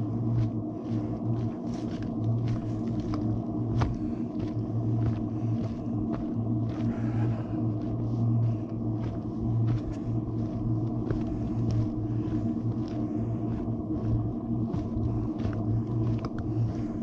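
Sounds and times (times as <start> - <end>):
footsteps on rocky dirt trail: 0.0 - 17.0
steady low hum: 0.0 - 17.0.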